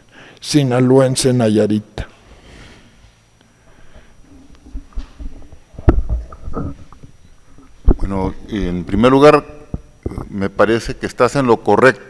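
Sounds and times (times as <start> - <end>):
microphone handling thumps: 4.0 - 9.0, 9.6 - 10.3.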